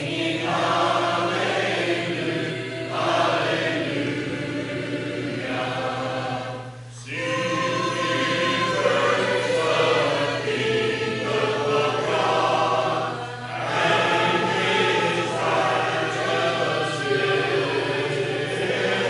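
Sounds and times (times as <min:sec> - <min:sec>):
congregation singing a hymn: 0:00.0 - 0:19.0.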